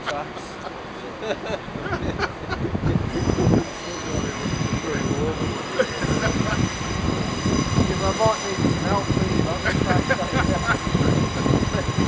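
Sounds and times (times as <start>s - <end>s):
diesel locomotive rumbling: 0.0s - 12.0s.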